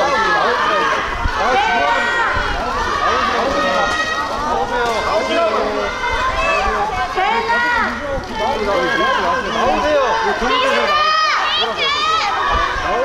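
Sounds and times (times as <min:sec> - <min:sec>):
crowd calling and shouting: 0:00.0 - 0:13.0.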